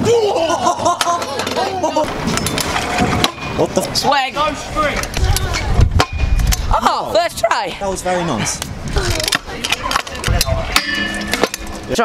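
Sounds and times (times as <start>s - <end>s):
wind on microphone: 4.5s - 11.9s.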